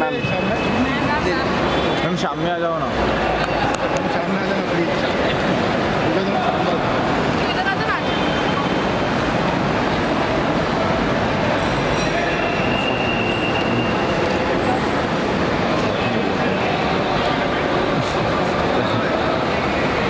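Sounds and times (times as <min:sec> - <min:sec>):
loud background noise: 0:00.0 - 0:20.0.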